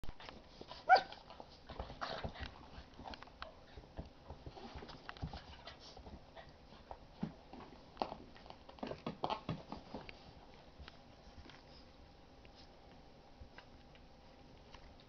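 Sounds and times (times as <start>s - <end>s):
dogs scuffling: 0.2s - 13.0s
paws clicking on floor: 0.2s - 15.0s
puppy yelping: 0.9s - 1.2s.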